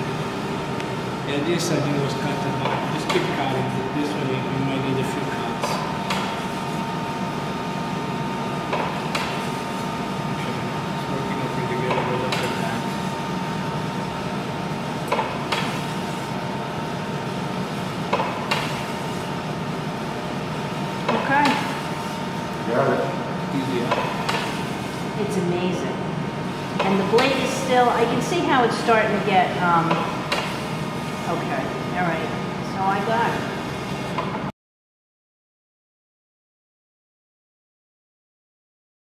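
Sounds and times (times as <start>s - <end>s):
steady hum: 0.0s - 34.5s
meat slicer knocks and clicks: 15.0s - 15.8s, 18.1s - 18.8s, 23.8s - 24.6s.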